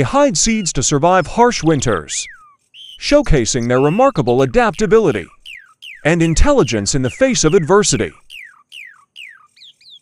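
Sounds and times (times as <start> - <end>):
songbird whistling notes: 0.5 - 10.0.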